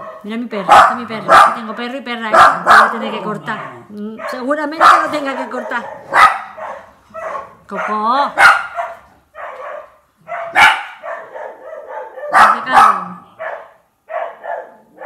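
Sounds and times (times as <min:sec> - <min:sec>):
dog barking: 0:00.0 - 0:15.0.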